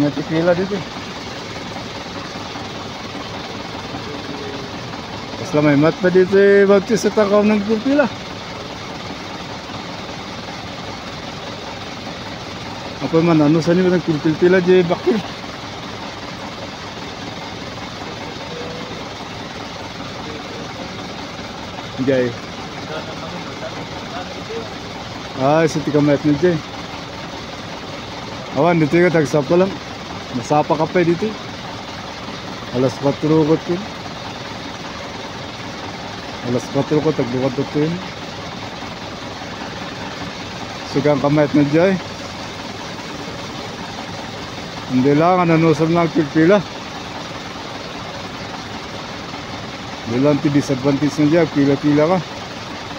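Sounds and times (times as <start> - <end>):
truck engines idling: 0.0 - 52.9.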